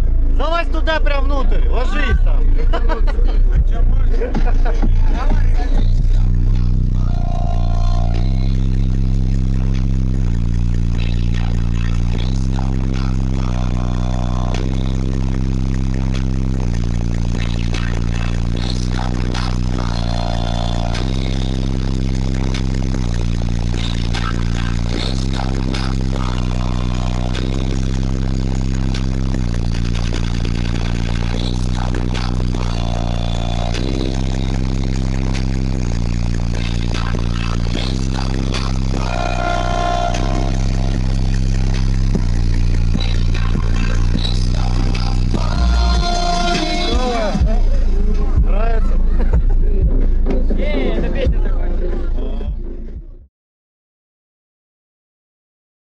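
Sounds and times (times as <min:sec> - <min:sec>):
loud subwoofer bass notes: 0:00.0 - 0:53.3
loose parts buzzing: 0:05.8 - 0:47.2.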